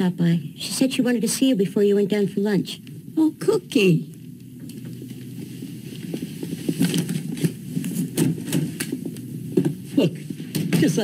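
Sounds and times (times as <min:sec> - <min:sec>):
rustling and shuffling: 0:04.5 - 0:11.0.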